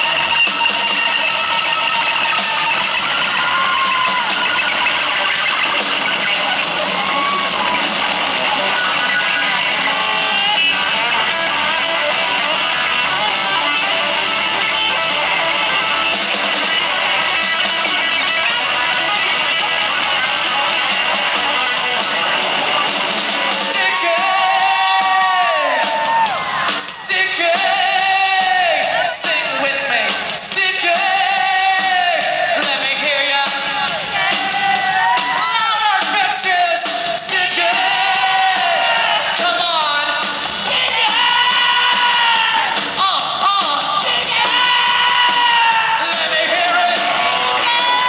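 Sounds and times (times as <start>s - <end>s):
rock band playing: 0.0s - 48.0s.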